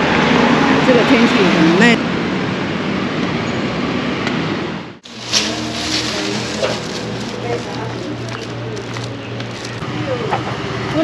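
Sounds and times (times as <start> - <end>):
street traffic rush: 0.0 - 11.0.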